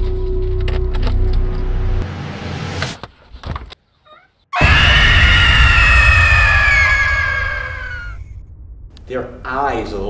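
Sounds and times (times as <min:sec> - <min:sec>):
high tones shrieking: 0:04.6 - 0:08.6
deep rumble: 0:04.6 - 0:10.0.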